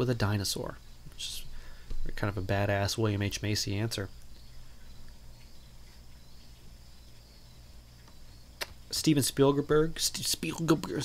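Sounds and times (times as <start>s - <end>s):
low electrical hum with hiss: 0.0s - 11.0s.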